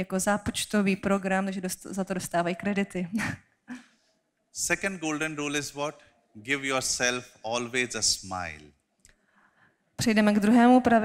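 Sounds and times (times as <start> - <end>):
man speaking into a microphone: 4.6 - 8.7.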